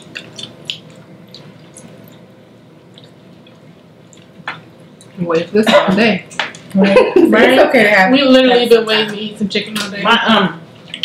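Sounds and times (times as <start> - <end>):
mouth clicks and lip smacks: 0.0 - 2.3, 10.8 - 11.0
faint room hum: 0.0 - 11.0.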